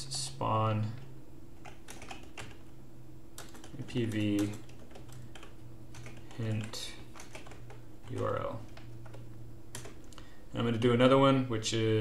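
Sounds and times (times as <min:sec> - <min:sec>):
low steady hum: 0:00.0 - 0:12.0
keyboard typing: 0:01.6 - 0:02.7, 0:03.4 - 0:10.2.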